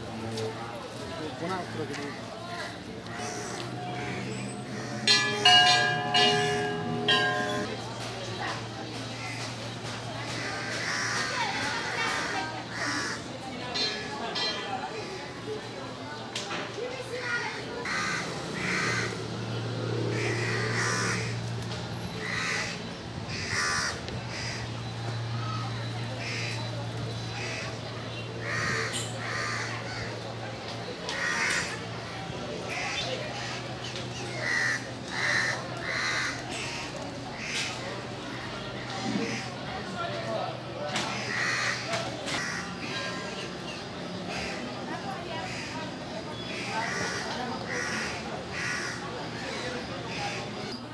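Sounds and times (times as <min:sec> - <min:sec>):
people's voices: 0:00.0 - 0:50.9
crows cawing: 0:02.6 - 0:07.7, 0:10.4 - 0:13.3, 0:17.8 - 0:19.2, 0:20.1 - 0:21.4, 0:22.2 - 0:24.7, 0:28.4 - 0:30.2, 0:31.1 - 0:31.8, 0:34.4 - 0:37.8, 0:41.1 - 0:43.3, 0:45.4 - 0:45.8, 0:46.5 - 0:50.4.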